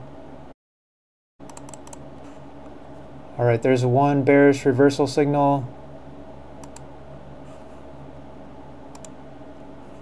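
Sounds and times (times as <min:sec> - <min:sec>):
steady low hum: 0:00.0 - 0:00.5, 0:01.4 - 0:10.0
computer mouse clicks: 0:01.4 - 0:02.0, 0:06.6 - 0:06.9, 0:08.9 - 0:09.2.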